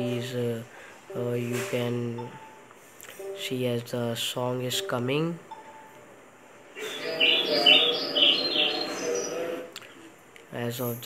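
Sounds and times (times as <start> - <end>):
birds chirping: 6.7 - 9.8.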